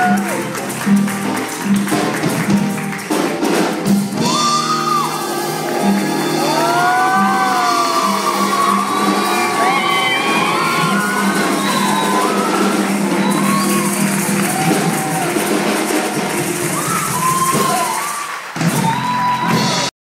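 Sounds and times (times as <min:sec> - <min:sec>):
crowd whooping and cheering: 0:00.0 - 0:00.7, 0:04.2 - 0:19.9
maracas rattling: 0:00.0 - 0:18.3
live band playing: 0:00.0 - 0:19.9.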